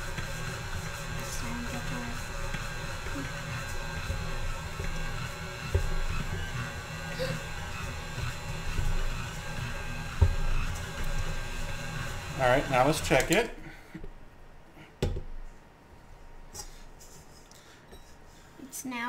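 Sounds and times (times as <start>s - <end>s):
stand mixer running: 0.0s - 13.6s.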